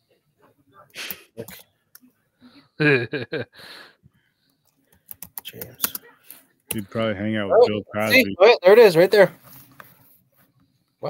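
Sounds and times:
computer keyboard typing: 4.9 - 6.0.

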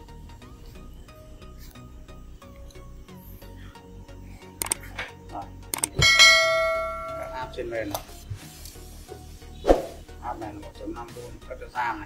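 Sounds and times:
mouse clicks: 4.6 - 4.8, 5.7 - 6.0
bright bell ding: 6.0 - 7.7.

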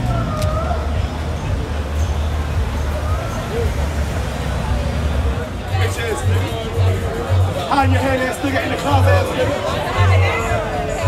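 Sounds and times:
people talking: 0.0 - 11.0
traffic rumble: 0.0 - 11.0.

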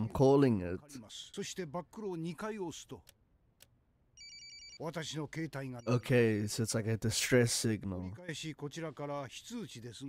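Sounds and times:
man speaking: 0.0 - 3.1, 4.8 - 10.0.

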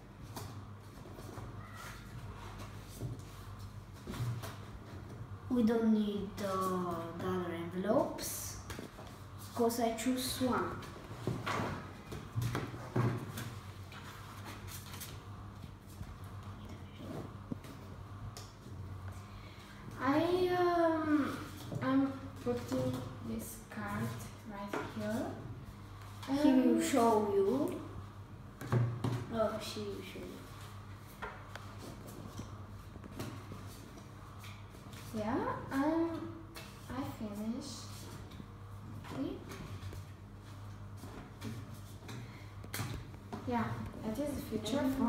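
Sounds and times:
low steady hum: 0.0 - 45.0.

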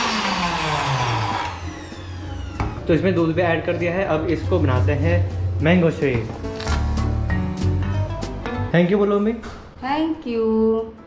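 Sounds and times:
blender motor spinning down: 0.0 - 3.2.

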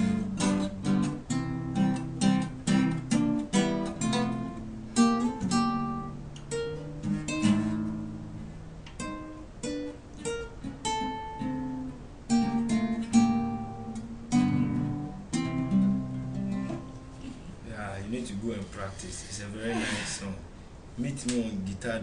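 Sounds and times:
acoustic guitars strumming chords: 0.0 - 17.6.

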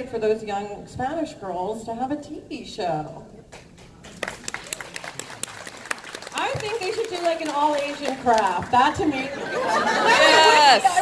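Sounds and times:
audience clapping: 3.5 - 9.3.

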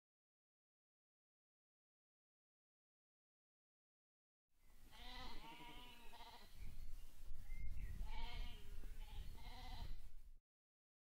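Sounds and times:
sheep bleating: 4.9 - 6.6, 8.0 - 10.0.

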